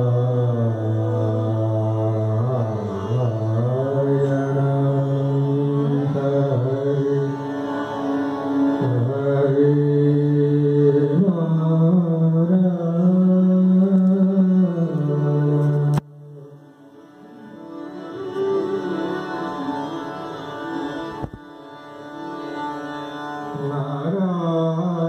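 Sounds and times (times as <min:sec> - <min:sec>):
man singing devotional song: 0:00.0 - 0:07.5, 0:08.8 - 0:16.6, 0:23.5 - 0:25.0
instrumental accompaniment: 0:13.8 - 0:24.7.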